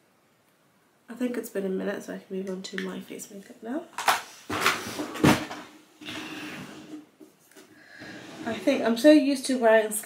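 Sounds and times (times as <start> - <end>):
makeup products clattering: 3.9 - 5.8.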